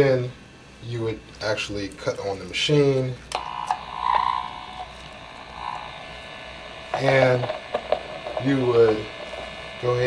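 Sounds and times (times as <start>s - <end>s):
buzzing tone from speaker: 0.0s - 10.0s
electrical hum and hiss: 0.0s - 10.0s.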